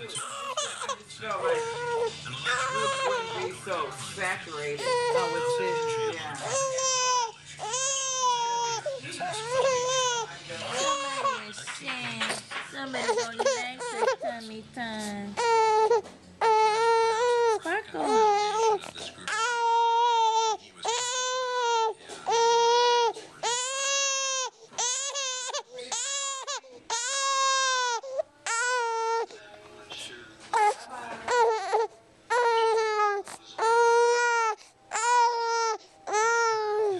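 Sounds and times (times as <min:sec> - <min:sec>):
infant crying: 0:00.1 - 0:03.6, 0:04.7 - 0:11.5, 0:13.0 - 0:14.4, 0:15.4 - 0:29.4, 0:30.5 - 0:36.9.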